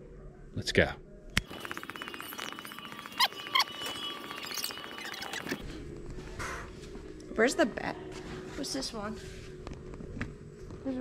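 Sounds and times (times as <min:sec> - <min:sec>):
sped-up ticking and squeaky chirps: 0:01.4 - 0:05.6.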